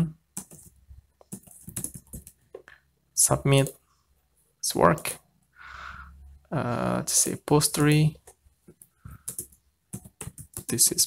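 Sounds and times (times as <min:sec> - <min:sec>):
typing on computer keyboard: 0:00.3 - 0:02.7, 0:08.2 - 0:11.0.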